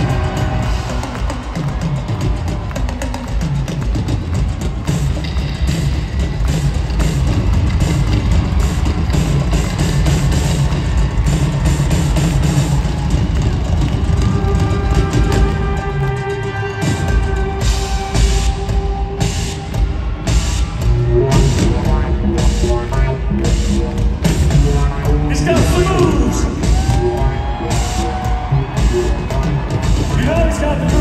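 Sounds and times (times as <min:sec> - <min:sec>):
drum kit beat: 0:00.0 - 0:31.0
live synth-pop band playing: 0:00.0 - 0:31.0.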